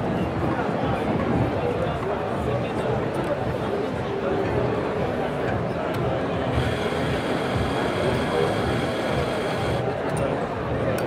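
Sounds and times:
coffee grinder running: 6.6 - 9.8.

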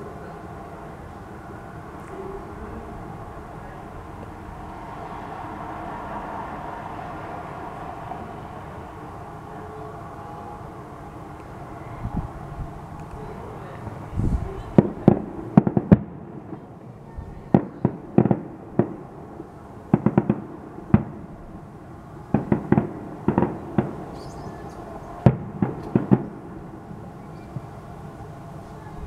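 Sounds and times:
firework shells bursting: 17.5 - 19.1, 22.3 - 24.6, 25.2 - 26.6.

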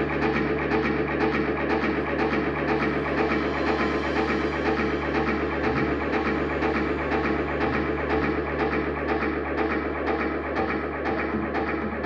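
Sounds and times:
drums keeping a beat: 0.0 - 12.0.

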